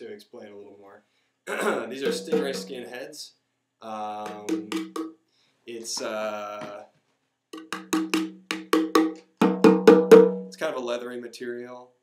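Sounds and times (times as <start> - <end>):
hand drum finger taps: 2.0 - 2.8, 4.3 - 5.1, 7.6 - 10.2.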